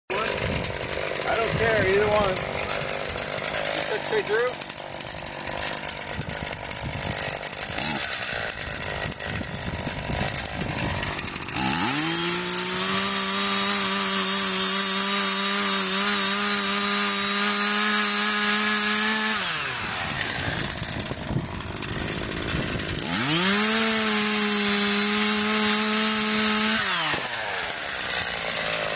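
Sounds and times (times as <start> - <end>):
chainsaw cutting wood: 0.1 - 28.9.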